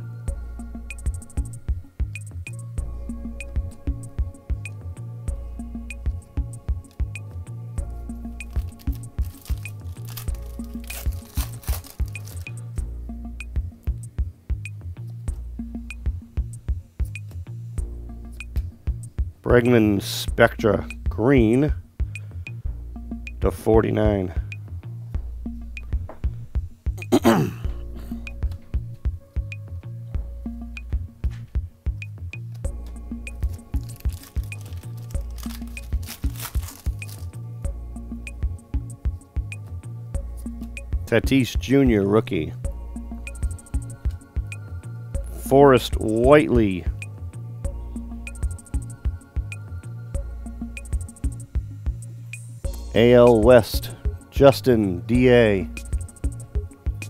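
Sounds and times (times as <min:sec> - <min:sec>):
electronic music with steady beat: 0:00.0 - 0:57.0
foil wrapper tearing and crinkling: 0:08.4 - 0:12.6, 0:33.4 - 0:37.4.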